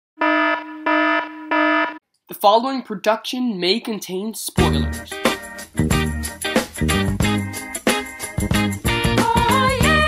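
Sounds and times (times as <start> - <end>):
buzzy electronic alarm beeps: 0.2 - 2.0.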